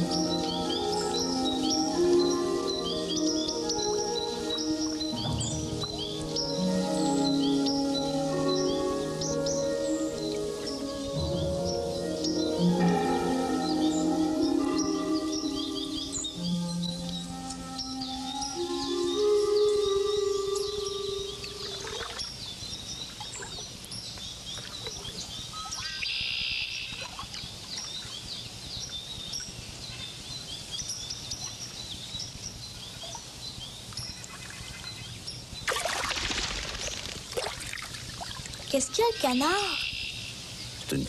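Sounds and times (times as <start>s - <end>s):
film music held notes: 0.0s - 22.2s
wild birds chirping and singing: 0.0s - 41.0s
water splashing: 35.6s - 38.7s.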